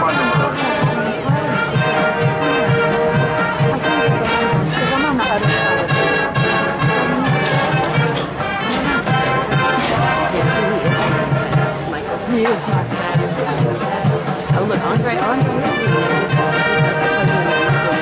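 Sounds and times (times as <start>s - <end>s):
crowd chatter: 0.0s - 18.0s
marching band brass playing: 0.0s - 18.0s.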